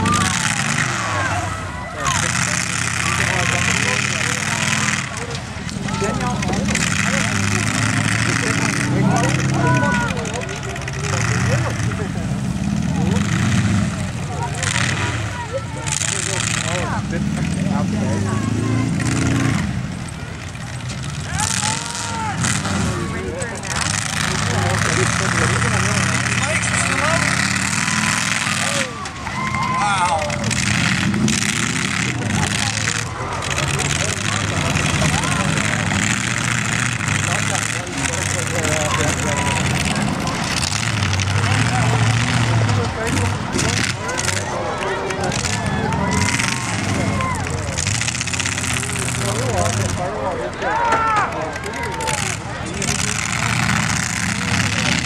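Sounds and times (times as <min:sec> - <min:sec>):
car engines revving: 0:00.0 - 0:55.0
cars crashing: 0:00.0 - 0:55.0
crowd voices: 0:00.0 - 0:55.0.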